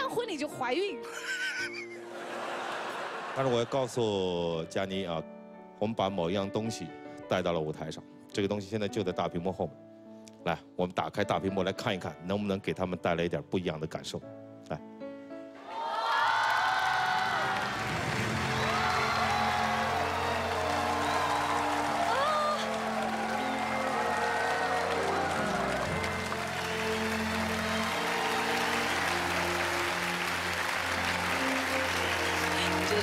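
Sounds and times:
background music: 0.0s - 33.0s
audience applause: 2.1s - 4.0s, 15.7s - 33.0s
audience crying out: 15.7s - 33.0s.

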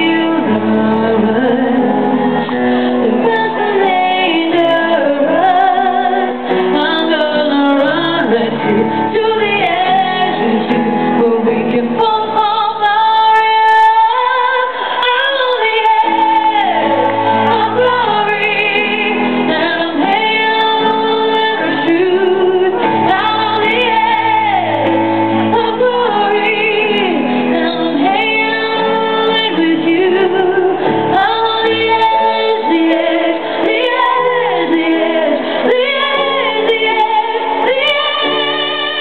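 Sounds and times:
grand piano accompaniment: 0.0s - 39.0s
woman singing with vibrato: 0.0s - 39.0s.

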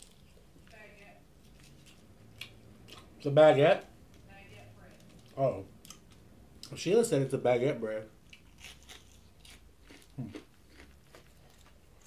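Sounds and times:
person chewing: 1.4s - 3.1s, 5.0s - 6.8s, 8.2s - 12.0s.

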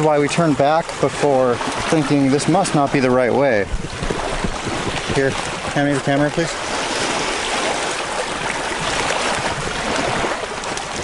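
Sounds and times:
sea water washing over rocks: 0.0s - 11.0s.

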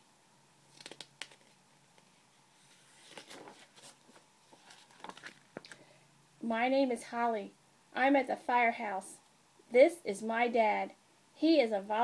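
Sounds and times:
book handling clicks and rustles: 0.7s - 5.8s.

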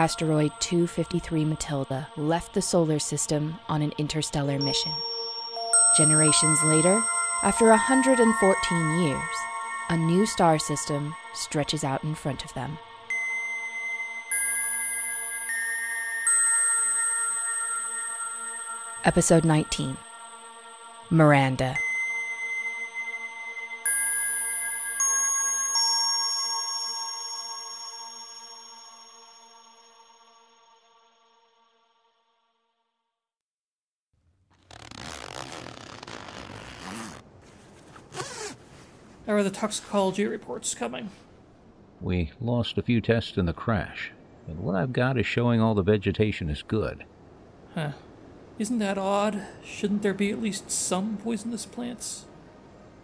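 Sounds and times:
zipper pulled: 34.5s - 38.8s.

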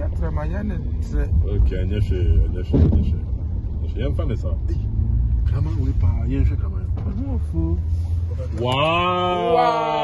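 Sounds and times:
car engine and road noise: 0.0s - 10.0s
people talking: 5.5s - 10.0s.

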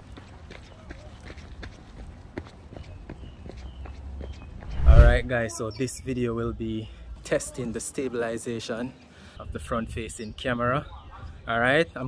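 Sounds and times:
running footsteps on pavement: 0.0s - 4.7s
wind rumble: 4.6s - 5.3s.

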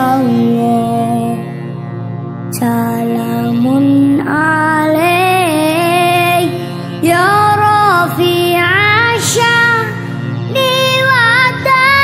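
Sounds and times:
woman singing devotional song: 0.0s - 1.7s, 2.5s - 12.0s
low sustained accompaniment: 2.4s - 12.0s.

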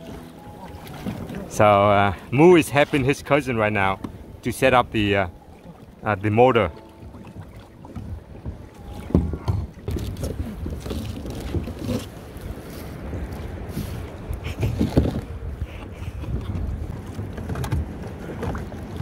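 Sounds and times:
wind rumbling on microphone: 7.0s - 19.0s
knocks on plastic kayaks: 8.0s - 10.1s.

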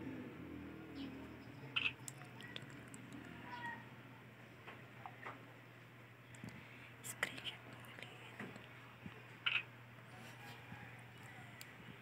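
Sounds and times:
low whispering: 6.3s - 9.3s.

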